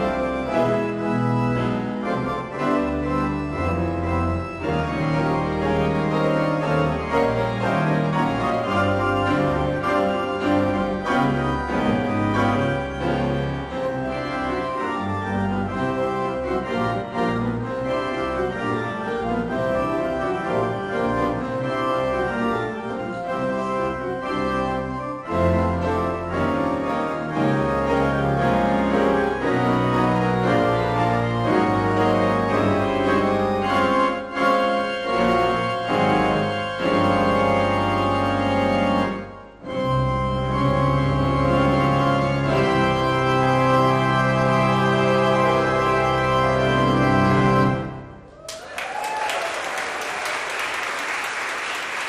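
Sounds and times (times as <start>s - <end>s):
church organ chords: 0.0s - 48.3s
piano notes and chords: 0.0s - 48.4s.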